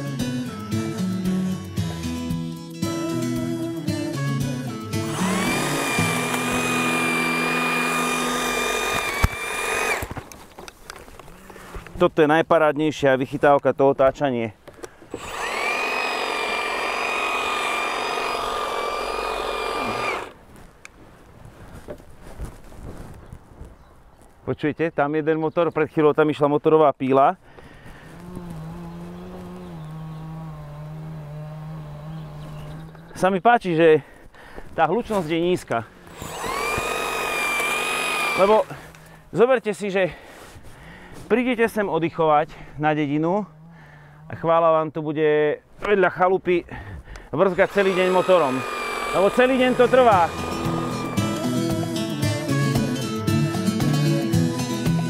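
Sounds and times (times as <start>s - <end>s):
hedge trimmer motor whine: 4.9s - 11.6s, 15.1s - 20.4s, 27.9s - 33.1s, 36.0s - 39.2s, 47.4s - 53.0s.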